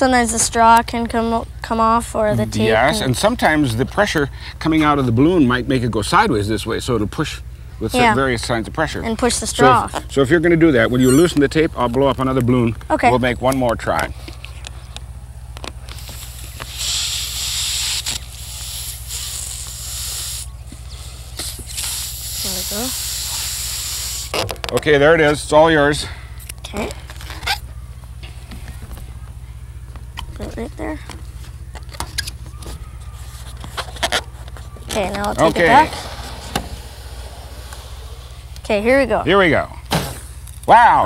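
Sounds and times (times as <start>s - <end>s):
steady low hum: 0.0s - 41.0s
breath blowing up balloon: 16.0s - 24.4s.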